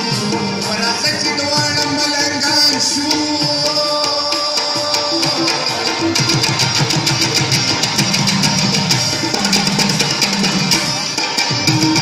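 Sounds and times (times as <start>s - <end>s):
hand drums playing fast rhythm: 0.0s - 12.0s
stringed instrument: 0.0s - 12.0s.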